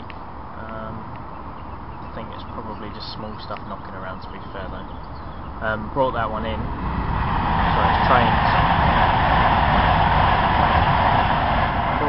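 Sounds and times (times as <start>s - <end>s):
loud engine drone: 6.3s - 12.0s.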